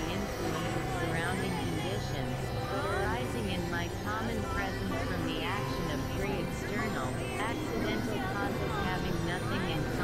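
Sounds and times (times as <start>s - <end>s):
low synthesizer drone: 0.0s - 10.0s.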